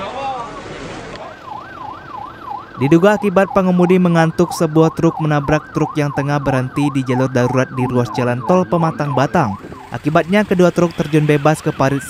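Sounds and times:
siren yelping: 0:00.4 - 0:12.0.

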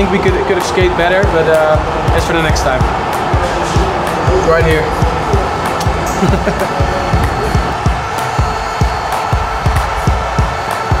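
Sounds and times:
kick drum beat: 0:00.0 - 0:11.0.

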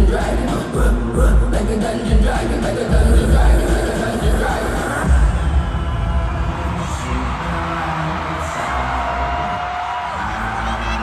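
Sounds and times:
concert music with pulsing bass: 0:00.0 - 0:11.0
crowd voices: 0:02.4 - 0:11.0.

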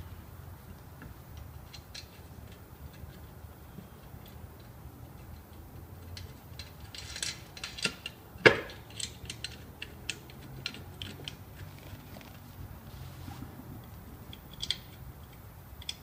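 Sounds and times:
wheel nuts clicking on metal: 0:01.2 - 0:12.1, 0:13.8 - 0:16.0.

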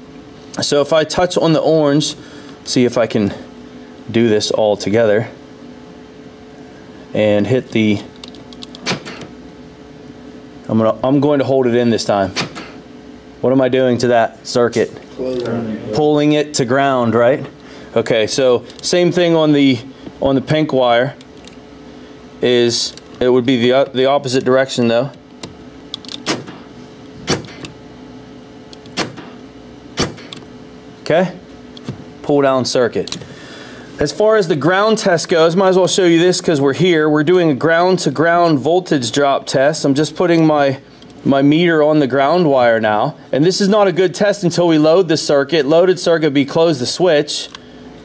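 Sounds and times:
faint steady hum: 0:00.0 - 0:48.0
door lock actuators clunking: 0:08.2 - 0:09.3, 0:12.3 - 0:12.8, 0:25.4 - 0:26.6, 0:27.2 - 0:27.8, 0:28.7 - 0:29.3, 0:30.0 - 0:30.4.

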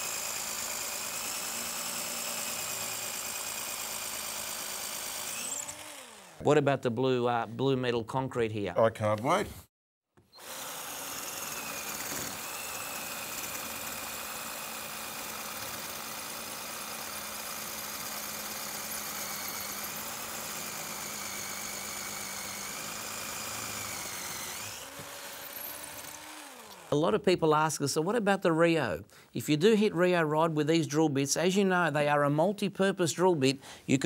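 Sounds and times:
cordless drill drilling into concrete: 0:00.0 - 0:06.4, 0:10.2 - 0:27.0
drill motor winding down: 0:00.0 - 0:06.4, 0:10.2 - 0:27.0.

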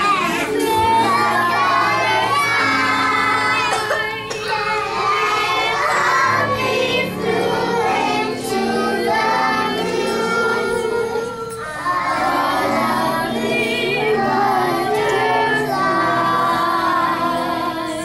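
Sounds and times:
children singing: 0:00.0 - 0:18.0.

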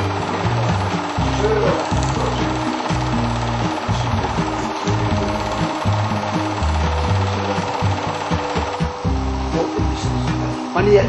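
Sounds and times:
film projector rattling: 0:00.0 - 0:11.0
low bass music: 0:00.0 - 0:11.0.

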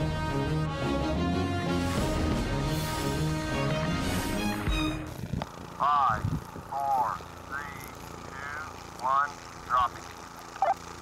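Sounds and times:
theme music: 0:00.0 - 0:05.1.

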